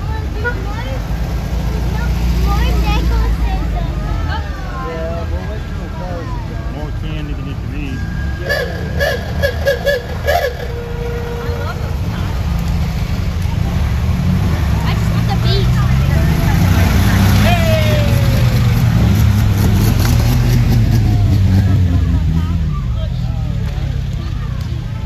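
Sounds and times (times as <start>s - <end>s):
car engines rumbling past: 0.0s - 25.0s
onlookers' voices: 0.0s - 25.0s.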